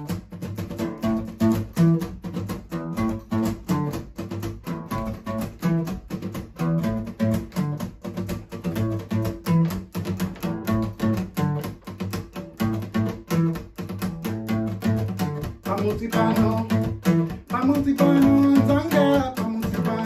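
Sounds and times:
acoustic guitar strumming: 0.0s - 20.0s.

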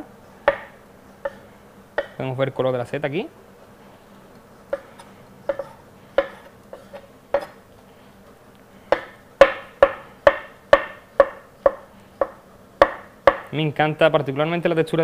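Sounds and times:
knife slicing mushroom on board: 0.4s - 2.2s, 4.4s - 7.6s.

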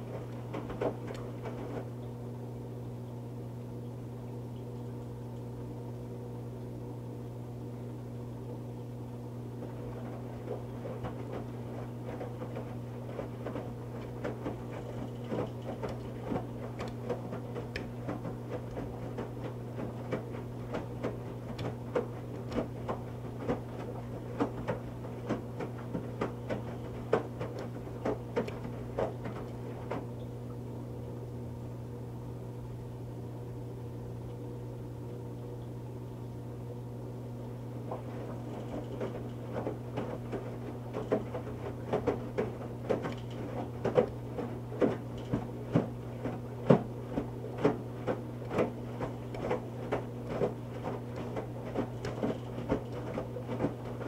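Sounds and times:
wet blanket tumbling in water: 0.0s - 2.4s, 9.5s - 30.7s, 37.6s - 54.0s
washing machine motor hum: 0.0s - 54.0s.

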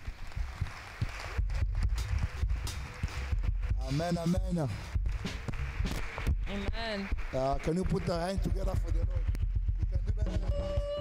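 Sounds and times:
congregation applauding: 0.0s - 11.0s.

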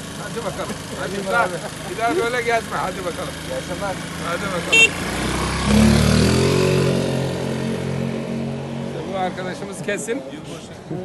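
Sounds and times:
motorcycle engine revving: 0.0s - 9.8s.

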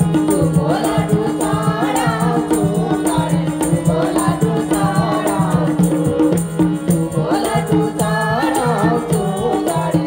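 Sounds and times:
hand drums playing rhythm: 0.0s - 10.0s
harmonium drone: 0.0s - 10.0s
women singing in unison: 0.0s - 10.0s.

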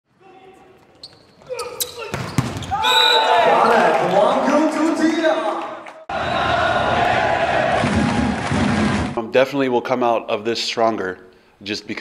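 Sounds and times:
players shouting: 1.4s - 8.6s
volleyball smacks in hall: 2.1s - 2.8s.

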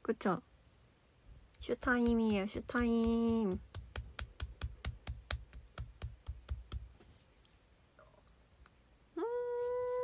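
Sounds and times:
person clapping hands: 3.0s - 6.9s.

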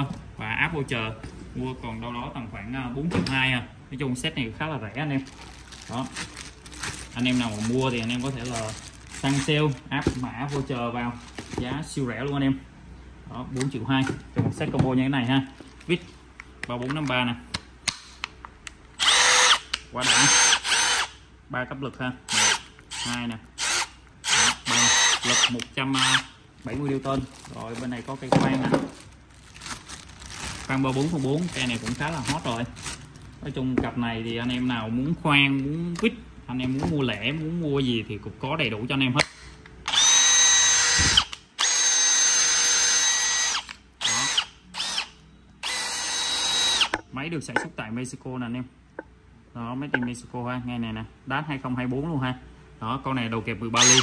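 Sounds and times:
impact driver motor whining: 39.9s - 47.0s.

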